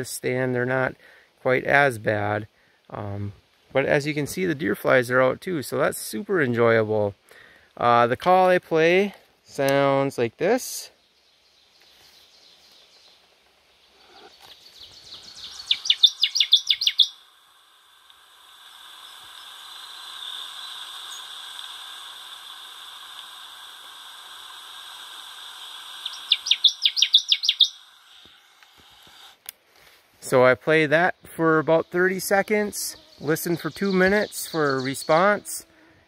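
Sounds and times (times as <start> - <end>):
steady high hiss: 0.0 - 36.0
bird song through speaker: 14.2 - 17.2, 26.0 - 27.8, 30.7 - 35.6.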